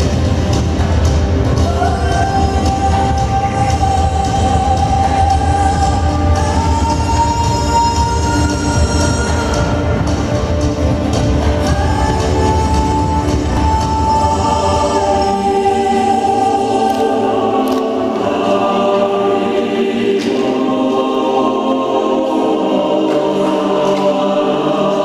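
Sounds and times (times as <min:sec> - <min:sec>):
choir singing held notes: 0:00.0 - 0:25.0.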